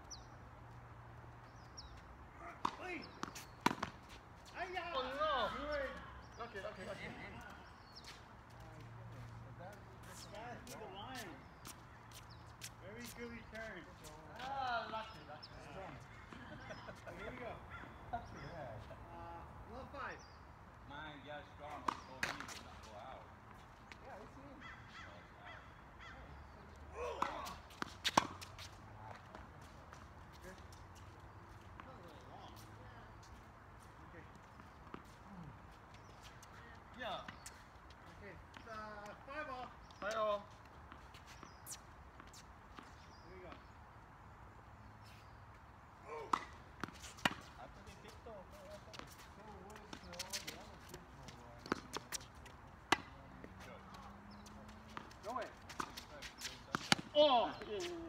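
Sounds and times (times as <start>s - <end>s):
tennis balls bouncing on hard court: 2.6s - 4.2s, 27.2s - 30.0s, 46.1s - 58.0s
tennis balls struck by rackets: 2.6s - 4.2s, 21.7s - 22.9s, 27.0s - 30.0s, 46.1s - 48.1s, 48.7s - 58.0s.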